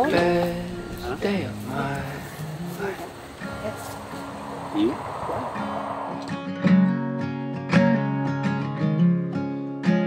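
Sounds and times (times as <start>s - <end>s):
acoustic guitar strummed chords: 0.0s - 4.6s, 5.6s - 10.0s
murmured voice: 0.0s - 6.1s
soft hiss: 0.0s - 6.9s.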